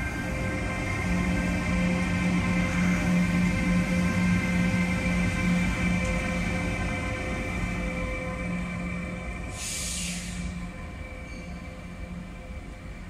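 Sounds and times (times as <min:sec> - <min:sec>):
electric locomotive humming: 0:00.0 - 0:13.0
brief hiss: 0:09.5 - 0:10.6.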